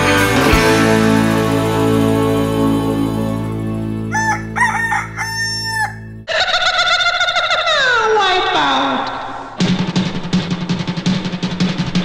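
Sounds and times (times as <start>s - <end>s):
music track with drums: 0.0s - 4.9s, 9.6s - 12.0s
background music: 0.0s - 6.3s
rooster crowing: 4.1s - 7.0s.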